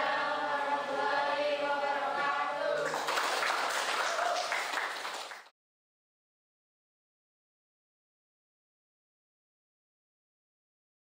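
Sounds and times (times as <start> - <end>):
voices chanting in unison: 0.0 - 3.1.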